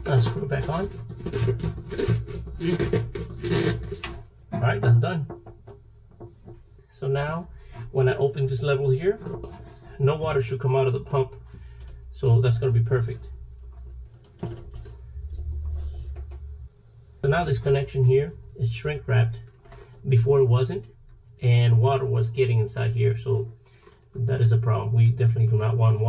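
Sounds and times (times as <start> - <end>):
plastic cap threads rasping: 0.0 - 4.6, 9.2 - 9.9
low steady rumble: 0.0 - 26.0.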